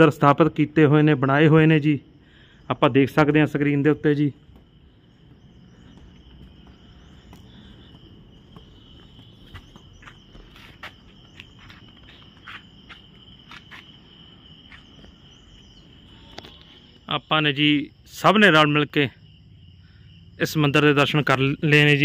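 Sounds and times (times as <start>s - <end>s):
insects droning: 0.0s - 22.0s
outdoor background hiss: 0.0s - 22.0s.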